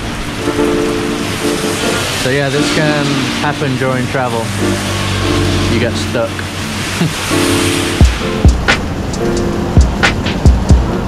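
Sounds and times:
held chord-like tone: 0.0 - 10.0
rain pouring: 0.0 - 11.0.

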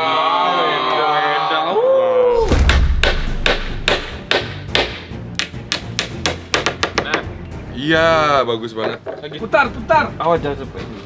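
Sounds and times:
background music: 2.4 - 11.0
hammer blows on wooden frame: 2.6 - 7.3.

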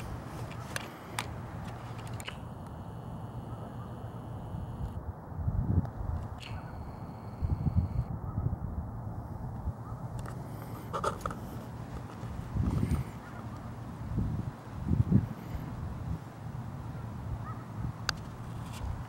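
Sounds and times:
camera zoom motor whirring: 0.0 - 5.0, 6.2 - 8.1, 10.2 - 13.6
outdoor ambience: 0.0 - 19.0.

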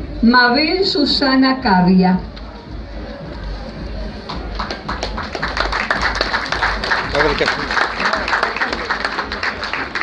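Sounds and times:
audience applauding: 4.2 - 10.0.

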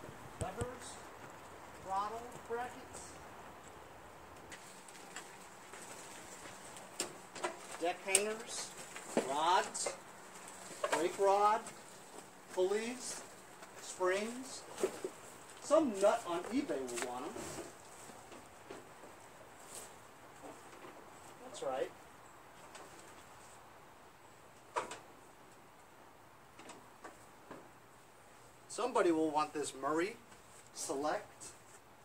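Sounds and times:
person making wordless sounds: 0.4 - 1.0.

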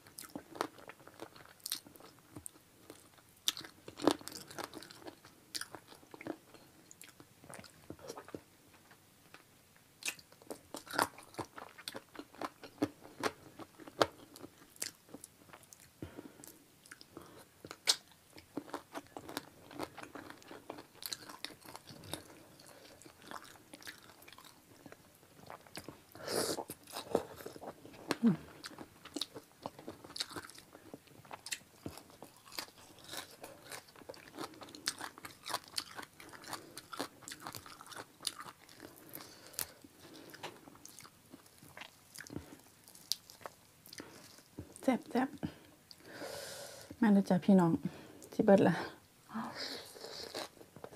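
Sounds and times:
chewing and biting chicken feet: 16.8 - 26.0, 26.7 - 44.5.

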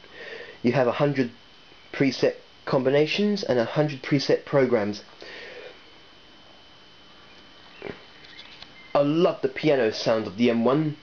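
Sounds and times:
person snorting breath: 0.1 - 0.6, 5.2 - 5.8
person speaking: 8.9 - 11.0.

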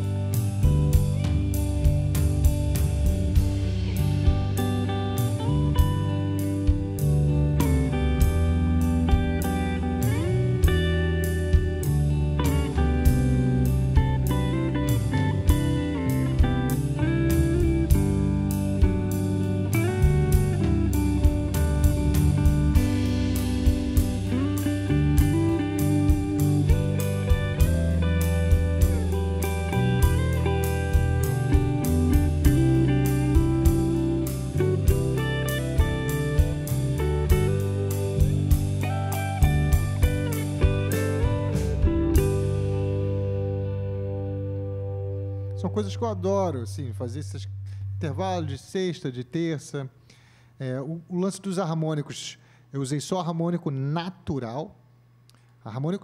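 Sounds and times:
steady beat: 0.0 - 44.8
electric guitar lead: 0.0 - 48.3
deep bass notes: 0.0 - 49.6.

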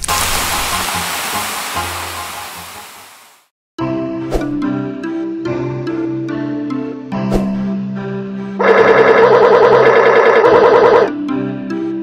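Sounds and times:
music: 0.0 - 3.0, 3.8 - 12.0
loud rushing hiss: 0.0 - 3.5.

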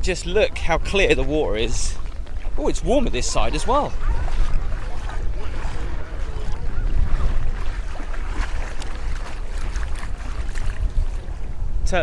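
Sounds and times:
wind buffeting microphone: 0.0 - 12.0
feet wading through water: 0.5 - 11.7.

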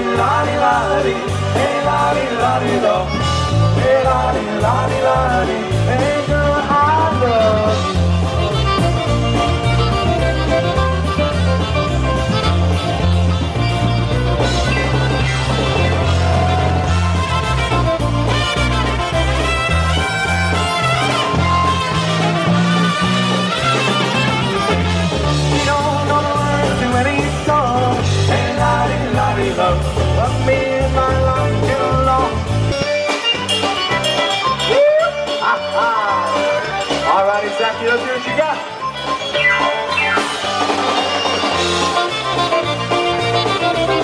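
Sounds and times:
bass guitar: 0.0 - 44.0
drums: 0.0 - 44.0
polka band playing: 0.0 - 44.0
sliding bending lead notes: 0.0 - 44.0
saxophone: 2.2 - 27.2, 38.6 - 44.0
trumpet: 7.1 - 27.2, 37.8 - 44.0.

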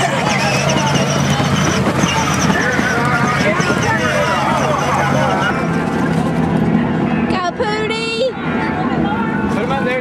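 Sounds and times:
low engine-like drone: 0.0 - 10.0
people talking: 0.0 - 10.0.

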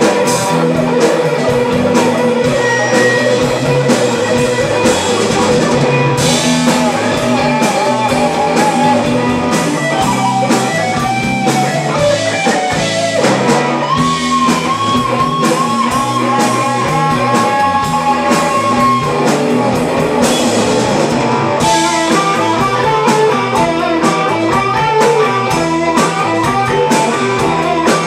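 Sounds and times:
bending guitar lead notes: 0.0 - 28.0
drum kit: 0.0 - 28.0
electric guitars: 0.0 - 28.0.

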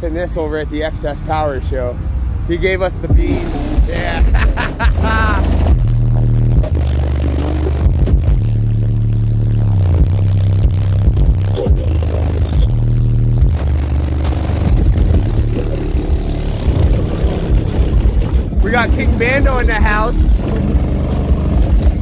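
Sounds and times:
bass-heavy music from subwoofer: 3.0 - 22.0.

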